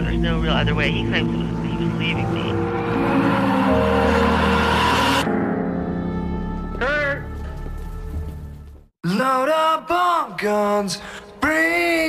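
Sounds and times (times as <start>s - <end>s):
sustained music tones: 0.0s - 8.8s
loud rush of noise: 1.8s - 5.3s.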